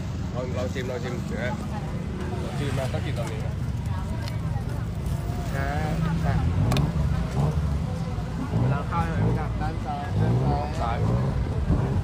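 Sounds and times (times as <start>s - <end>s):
street traffic rumble: 0.0s - 12.0s
voices talking: 0.0s - 12.0s.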